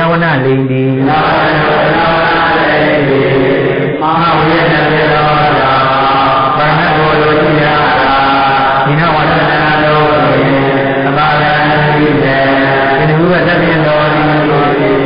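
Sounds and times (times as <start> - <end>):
person chanting: 0.0 - 15.0.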